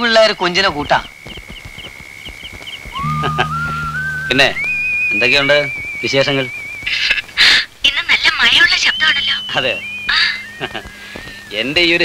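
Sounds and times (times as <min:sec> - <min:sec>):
whistle gliding upward: 0:02.9 - 0:07.0, 0:08.5 - 0:12.0
steady high tone with pips: 0:02.9 - 0:12.0
low sustained film music: 0:03.0 - 0:12.0.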